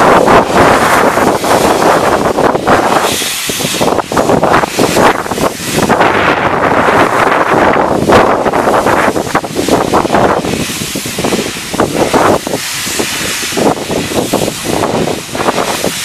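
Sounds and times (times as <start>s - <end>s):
steam hissing: 0.0s - 16.0s
wind buffeting microphone: 0.0s - 16.0s.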